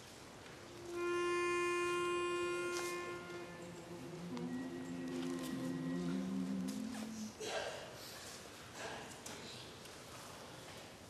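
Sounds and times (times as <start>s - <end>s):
pitch pipe note: 0.7s - 7.4s.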